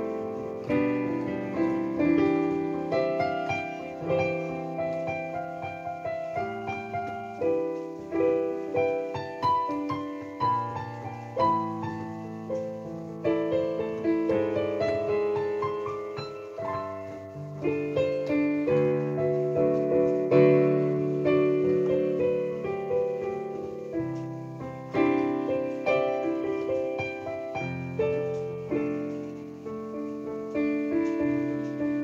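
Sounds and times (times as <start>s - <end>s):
solo piano ballad: 0.0s - 32.0s.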